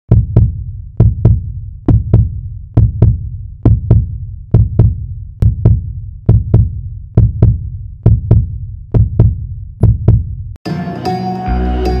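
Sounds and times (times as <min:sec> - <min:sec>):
deep heartbeat thumps: 0:00.1 - 0:10.6.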